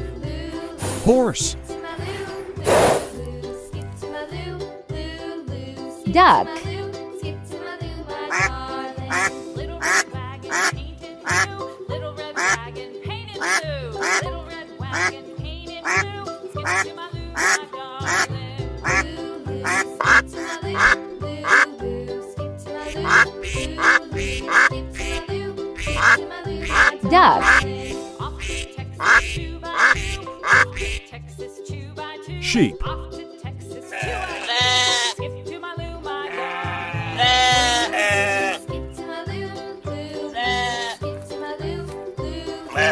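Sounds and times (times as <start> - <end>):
ducks quacking: 8.3 - 11.5, 12.3 - 12.6, 13.4 - 14.3, 14.9 - 15.2, 15.8 - 21.8, 22.8 - 31.1, 33.9 - 35.2, 36.3 - 38.6.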